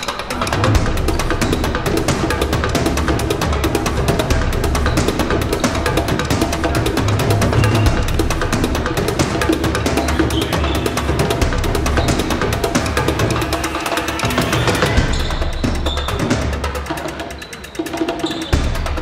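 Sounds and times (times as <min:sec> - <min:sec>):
music with percussive beat: 0:00.0 - 0:19.0.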